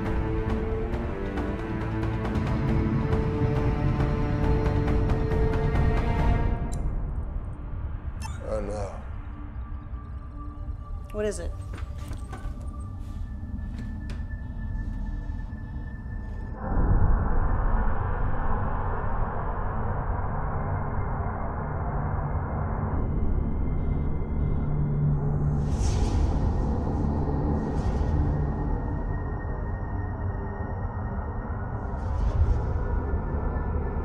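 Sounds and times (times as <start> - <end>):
ominous sci-fi film score: 0.0 - 34.0.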